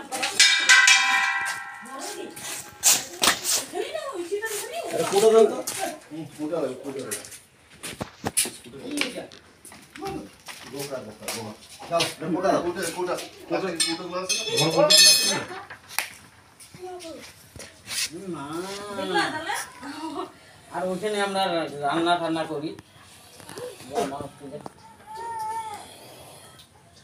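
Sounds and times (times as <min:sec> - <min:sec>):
people talking: 0:00.0 - 0:06.0
steel pots clanging: 0:00.2 - 0:03.2, 0:13.7 - 0:15.6
metallic clink with high ringing: 0:00.4 - 0:02.9, 0:13.8 - 0:15.5.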